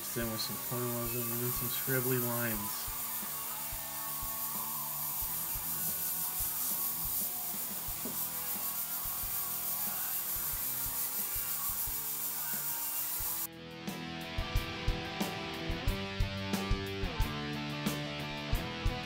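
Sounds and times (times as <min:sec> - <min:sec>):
airbrush hissing: 0:00.0 - 0:13.5
soft background music: 0:00.0 - 0:19.0.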